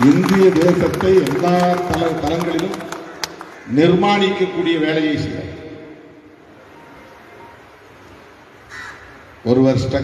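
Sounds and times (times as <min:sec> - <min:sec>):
steady background hiss: 0:00.0 - 0:10.0
crow cawing: 0:02.9 - 0:04.0, 0:08.6 - 0:09.2.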